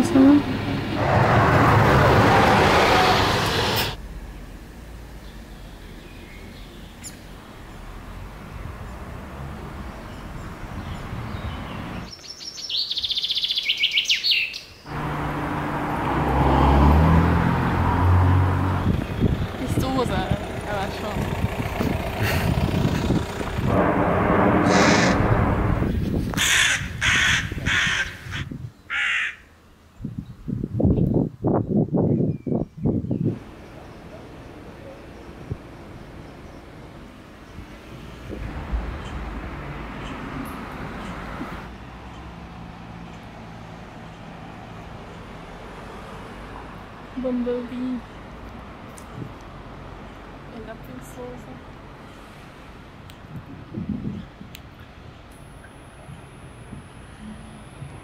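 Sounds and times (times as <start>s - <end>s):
bird calling: 24.7s - 25.3s.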